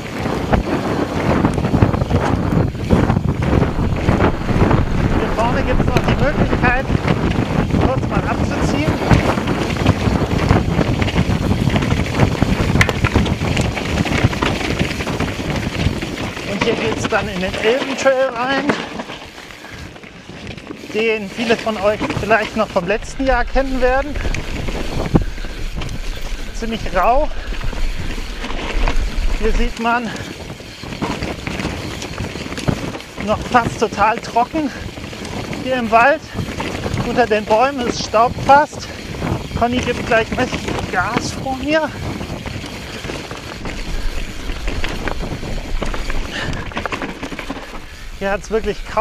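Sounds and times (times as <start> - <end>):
bike tyres clattering over stones: 0.0 - 49.0
wind buffeting microphone: 0.0 - 49.0.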